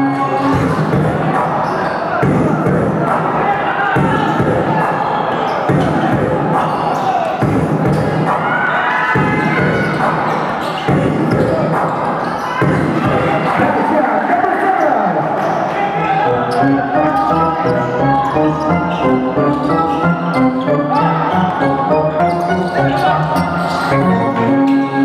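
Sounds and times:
background music: 0.0s - 14.4s, 15.2s - 25.0s
crowd voices: 0.0s - 25.0s
basketball bouncing on court: 5.7s - 6.8s, 9.2s - 13.2s.

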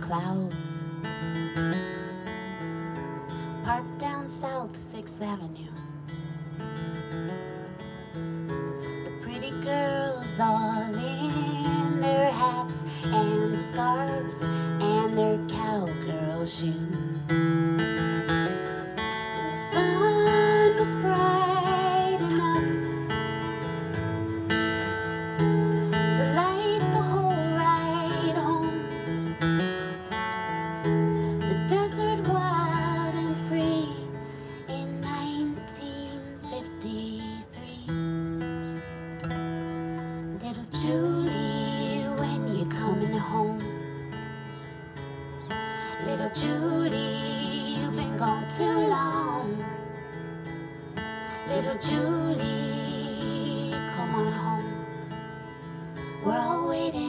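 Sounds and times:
woman singing with vibrato: 0.0s - 1.0s, 3.5s - 5.8s, 9.0s - 17.3s, 19.2s - 23.4s, 25.9s - 29.3s, 31.2s - 38.1s, 40.3s - 44.0s, 45.7s - 50.1s, 51.3s - 55.2s, 56.1s - 57.0s
acoustic guitar: 0.0s - 57.0s.

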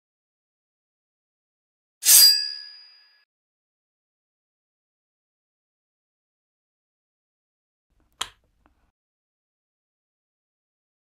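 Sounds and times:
bright metallic ding: 2.0s - 3.2s.

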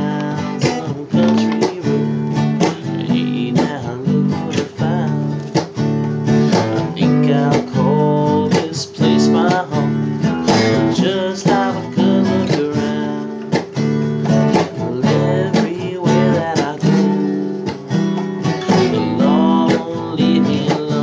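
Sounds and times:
man singing: 0.0s - 5.8s, 6.4s - 18.0s, 18.6s - 21.0s
acoustic guitar strumming: 0.0s - 21.0s.

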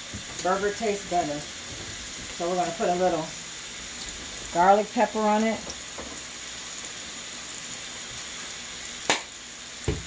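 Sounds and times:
fries frying in a pot: 0.0s - 10.0s
onions sizzling in oil: 0.0s - 10.0s.

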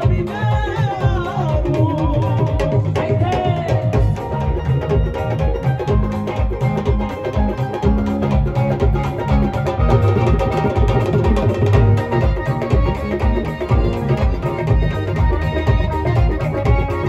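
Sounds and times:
folk band instrumental: 0.0s - 17.0s.

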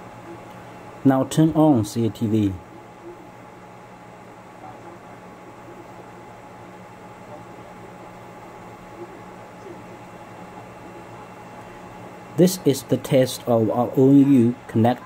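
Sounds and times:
electronic equipment hum and hiss: 0.0s - 15.0s.

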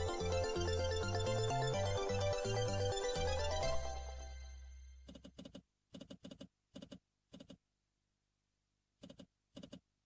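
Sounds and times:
game music: 0.0s - 5.0s.

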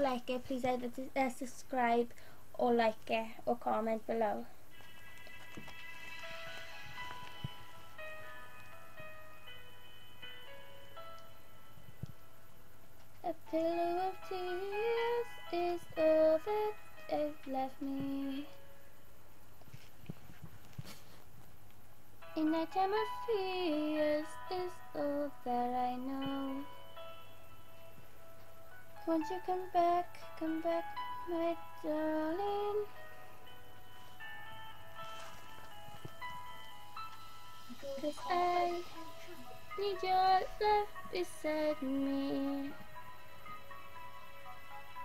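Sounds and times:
girl singing unaccompanied: 0.0s - 4.5s, 13.2s - 18.6s, 22.2s - 26.8s, 29.0s - 33.1s, 37.7s - 43.0s
backing music with held notes: 4.7s - 45.0s.

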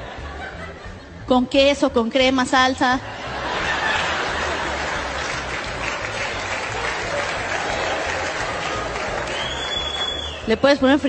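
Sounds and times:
comedy dialogue: 1.0s - 4.8s
audience applauding: 3.4s - 10.5s.

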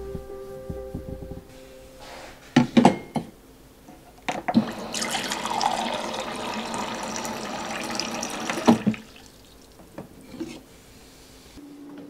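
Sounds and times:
water stream into glass: 4.6s - 9.7s.

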